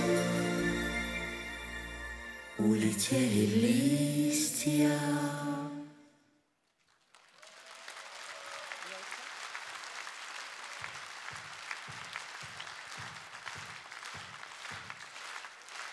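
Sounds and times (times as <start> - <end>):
audience applauding: 6.8 - 15.9
rhythmic clapping in unison: 8.8 - 15.9.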